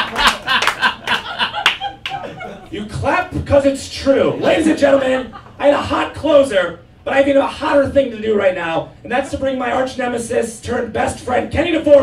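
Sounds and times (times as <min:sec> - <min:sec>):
audience applauding: 0:00.0 - 0:02.2
audience laughing: 0:00.0 - 0:02.8, 0:04.2 - 0:05.8.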